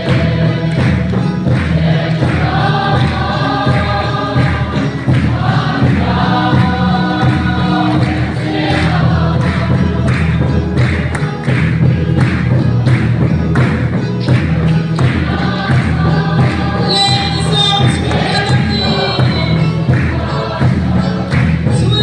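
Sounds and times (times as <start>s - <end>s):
congregation singing a hymn: 0.0s - 11.7s, 13.7s - 22.0s
hand-clapping: 0.0s - 22.0s
keyboard accompaniment: 0.0s - 22.0s
large drum beat: 0.0s - 22.0s.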